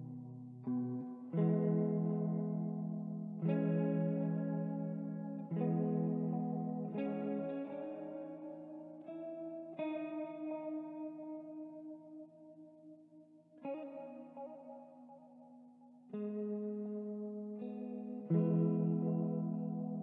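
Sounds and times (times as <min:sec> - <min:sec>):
ambient clean guitar chords: 0:00.0 - 0:20.0.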